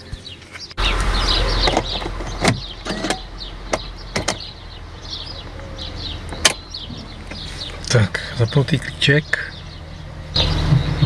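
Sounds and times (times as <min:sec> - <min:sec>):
low rumble: 0:00.8 - 0:11.0
knocks and clunks of handling: 0:01.7 - 0:04.5.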